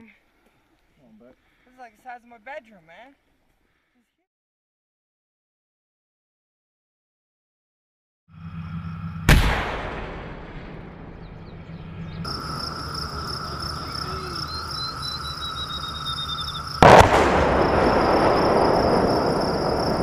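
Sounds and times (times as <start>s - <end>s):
shell impact explosion: 9.3s - 11.6s, 16.8s - 20.0s
howitzer firing boom: 9.3s - 12.4s, 16.8s - 20.0s
insects trilling: 12.0s - 20.0s.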